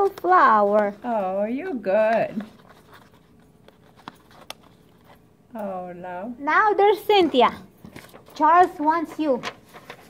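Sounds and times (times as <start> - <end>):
paper rustling and crinkling: 2.0 - 5.2, 7.3 - 10.0.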